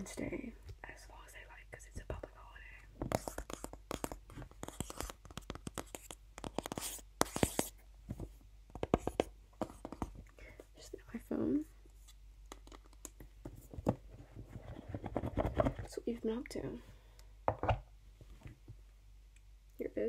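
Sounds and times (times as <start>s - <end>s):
soft whispering: 0.0s - 3.6s, 10.4s - 11.8s
scratchy rubs: 3.1s - 7.8s.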